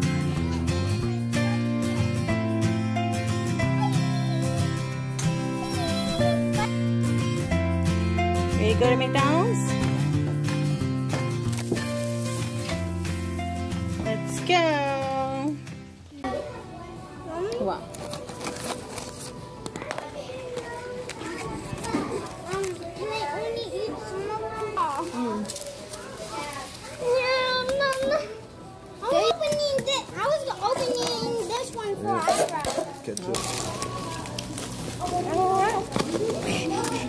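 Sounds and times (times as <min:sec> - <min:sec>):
children calling out and chattering: 0:00.0 - 0:02.3, 0:03.0 - 0:06.9, 0:16.1 - 0:37.0
background music: 0:00.0 - 0:16.2.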